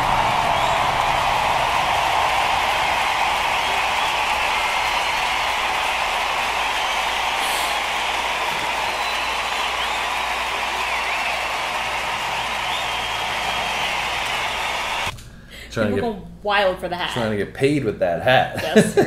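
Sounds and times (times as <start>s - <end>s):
crowd cheering and screaming: 0.0s - 15.1s
faint whistles: 0.0s - 15.1s.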